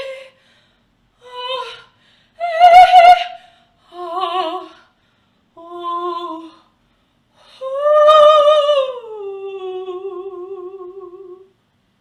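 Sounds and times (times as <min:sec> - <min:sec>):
woman singing wordless vocalise: 0:00.0 - 0:00.6, 0:01.2 - 0:11.6.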